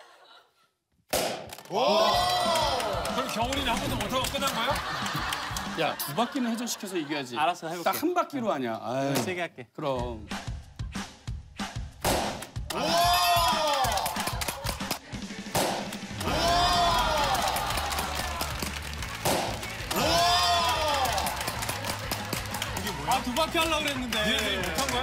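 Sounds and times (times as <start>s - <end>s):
background music swoops: 10.1s - 25.0s.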